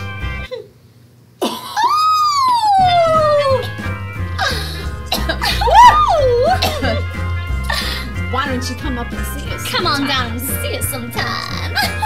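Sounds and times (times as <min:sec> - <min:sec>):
background music: 0:00.0 - 0:00.5, 0:02.5 - 0:12.0.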